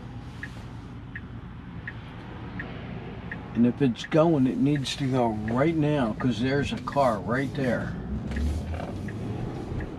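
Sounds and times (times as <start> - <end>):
turn signal ticking: 0.0 - 9.9.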